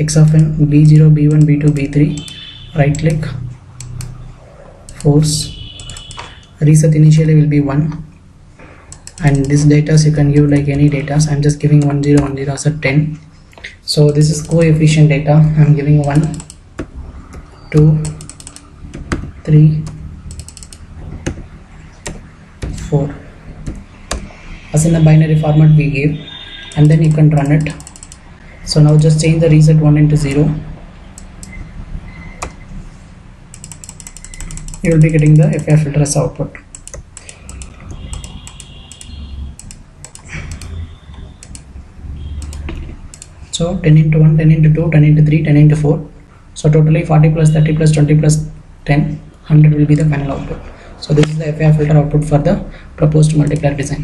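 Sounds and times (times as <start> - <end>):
typing on computer keyboard: 5.8 - 6.3, 8.9 - 9.7, 16.0 - 21.4, 22.0 - 23.0, 23.6 - 24.3, 26.7 - 28.2, 33.5 - 35.8, 36.7 - 41.7, 42.4 - 43.4.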